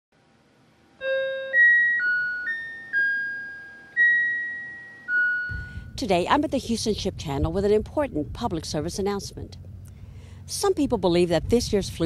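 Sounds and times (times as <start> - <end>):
keyboard jingle of high notes: 1.0 - 5.7.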